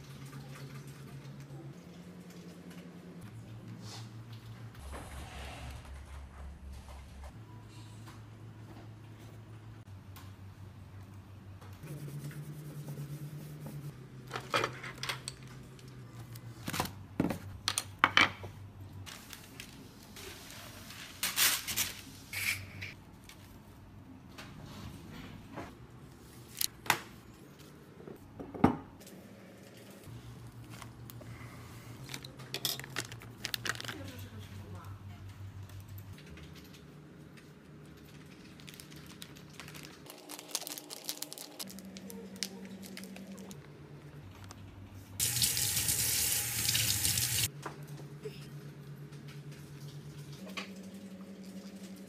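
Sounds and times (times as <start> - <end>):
plastic bag rustling: 31.9 - 34.4, 37.9 - 43.6
plastic packet crinkling and tearing: 32.0 - 34.3, 38.0 - 43.6.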